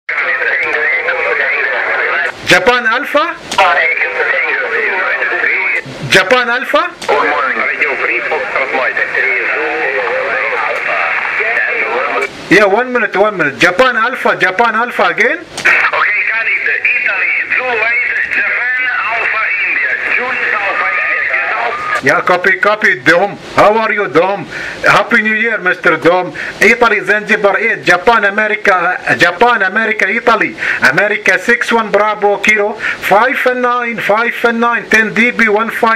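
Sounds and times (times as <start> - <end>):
thin voice over radio speaker: 0.1 - 2.4, 3.6 - 12.3, 15.6 - 22.1
steady low hum: 0.1 - 35.9.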